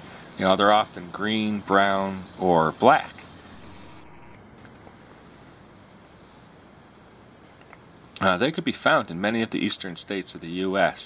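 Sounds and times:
high-pitched insect trill: 0:00.7 - 0:09.7.

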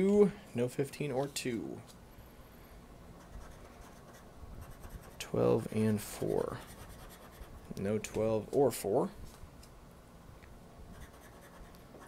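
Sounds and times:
scraper scratching lottery ticket: 0:03.3 - 0:07.6, 0:11.0 - 0:11.7.

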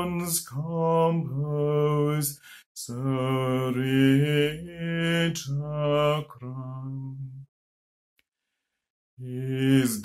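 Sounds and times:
man singing a hymn: 0:00.0 - 0:07.4, 0:09.2 - 0:10.0.

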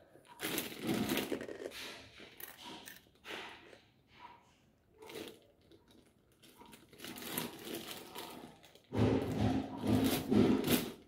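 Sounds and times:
rustling crinkling noise: 0:00.0 - 0:09.2.

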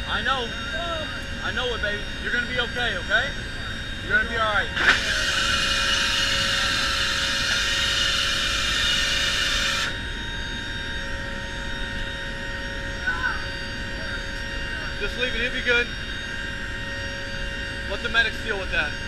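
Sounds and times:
constant whining tones: 0:00.0 - 0:19.0
turboprop engines droning: 0:00.0 - 0:19.0.

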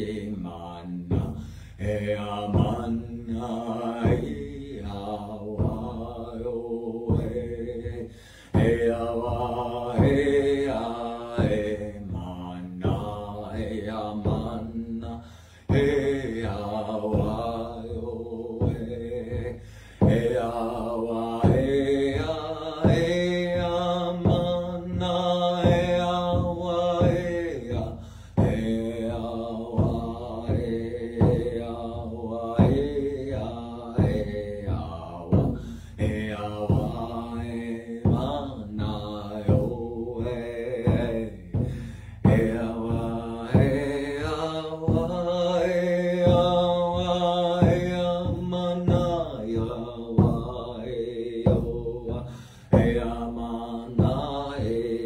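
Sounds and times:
frame drum beating: 0:00.0 - 0:55.0
man chanting: 0:00.0 - 0:55.0.

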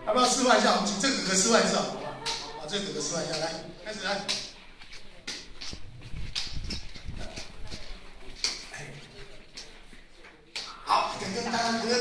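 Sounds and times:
indistinct voices of a group: 0:00.0 - 0:12.0
sharp hand slaps: 0:02.2 - 0:02.5, 0:10.6 - 0:10.8.

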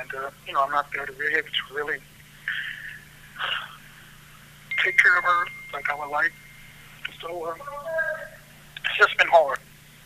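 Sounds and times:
man speaking over telephone: 0:00.0 - 0:02.0, 0:04.7 - 0:06.4, 0:07.0 - 0:09.6
low phone line hum: 0:00.0 - 0:10.0
thin high tone: 0:04.7 - 0:08.6.

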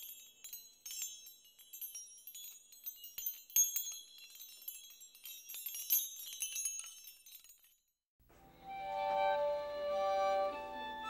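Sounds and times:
tinkling chimes and glassy clinks: 0:00.0 - 0:08.0
soft music with long held notes: 0:08.3 - 0:11.0.

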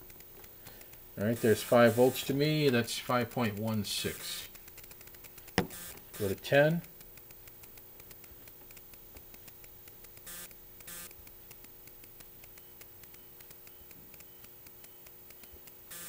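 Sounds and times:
faint electrical hum: 0:00.0 - 0:16.0
light rapid ticking: 0:00.0 - 0:16.0.

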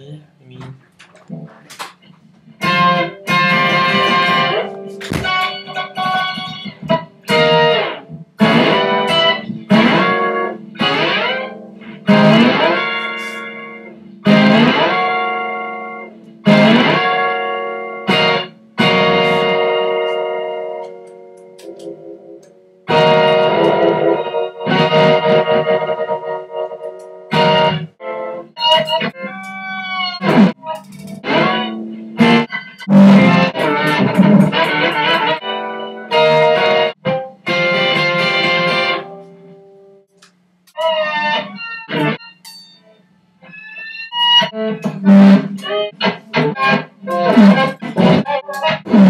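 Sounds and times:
electric guitar chords: 0:01.0 - 0:49.0.

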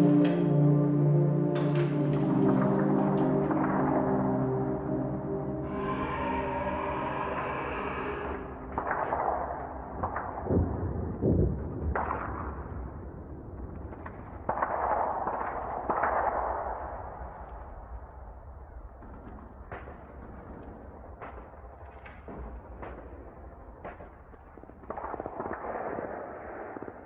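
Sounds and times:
sharp cracks: 0:07.3 - 0:11.0, 0:13.6 - 0:18.0, 0:19.0 - 0:27.0.

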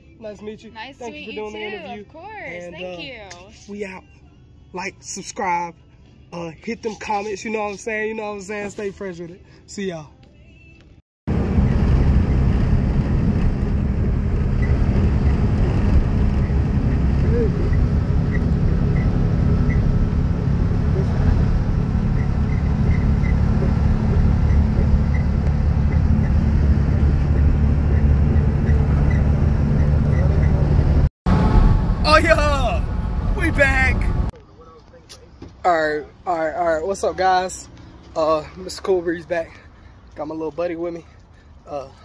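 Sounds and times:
vehicle rumble: 0:09.4 - 0:42.0.

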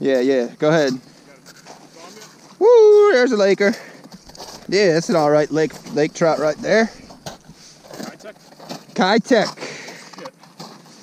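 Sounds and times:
light rustle: 0:03.7 - 0:11.0.

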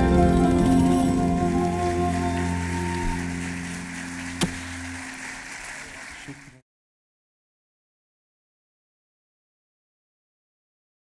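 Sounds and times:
ensemble holding final chord: 0:00.0 - 0:05.9
audience applause: 0:00.0 - 0:06.6.

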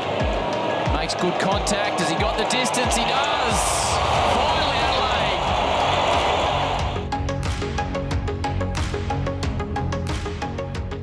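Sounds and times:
stadium crowd cheering: 0:00.0 - 0:07.1
music with a steady beat: 0:04.8 - 0:11.0.

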